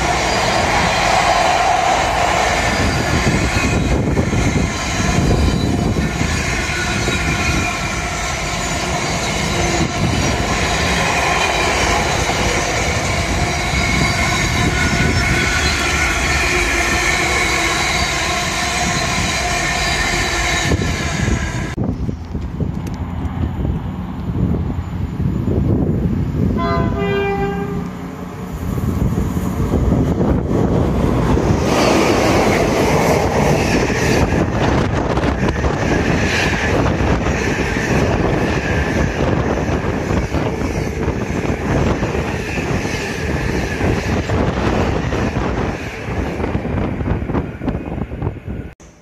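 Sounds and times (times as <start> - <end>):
train wheel and wagon noise: 0.0 - 49.0
train horn: 26.6 - 28.0.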